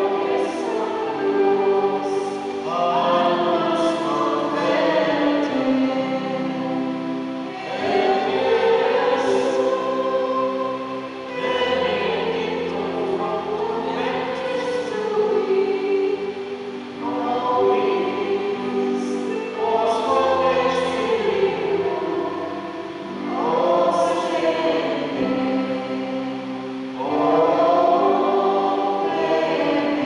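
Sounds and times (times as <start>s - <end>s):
choir singing a hymn: 0.0s - 30.0s.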